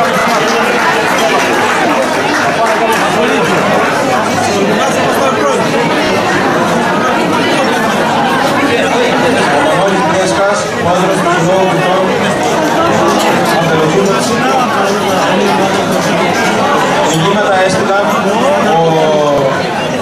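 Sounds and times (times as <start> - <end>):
babble of overlapping conversation: 0.0 - 20.0.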